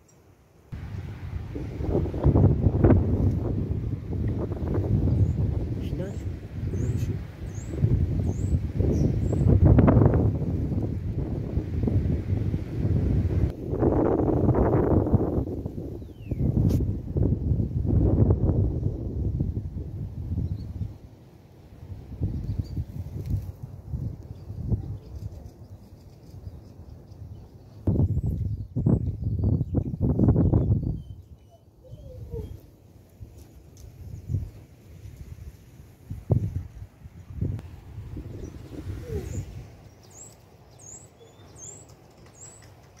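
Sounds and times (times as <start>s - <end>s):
wind buffeting microphone: 0.7s - 21.1s, 21.8s - 43.0s
faint high bird chirps: 24.3s - 32.6s, 38.4s - 42.7s.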